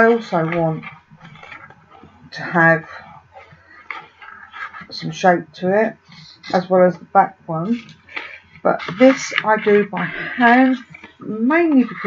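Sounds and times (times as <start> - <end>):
card rustling: 0.2 - 2.3, 7.7 - 12.0.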